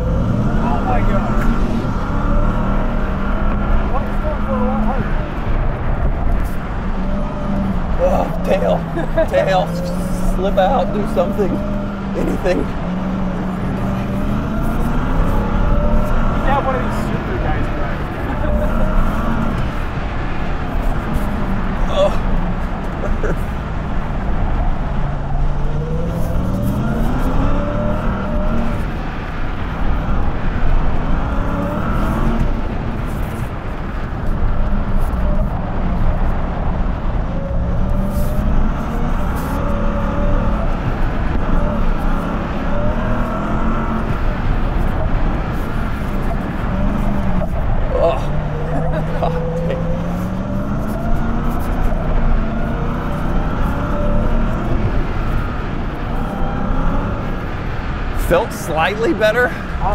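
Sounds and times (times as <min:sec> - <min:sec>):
truck engine revving: 0:00.0 - 0:59.9.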